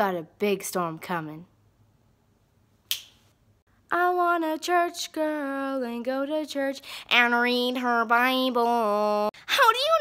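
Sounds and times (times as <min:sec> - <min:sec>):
finger snap: 0:02.9 - 0:03.2.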